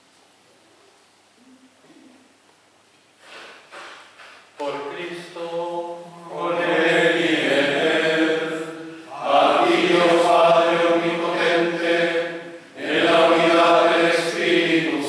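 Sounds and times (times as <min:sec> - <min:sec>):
male voices chanting: 0:04.6 - 0:15.0.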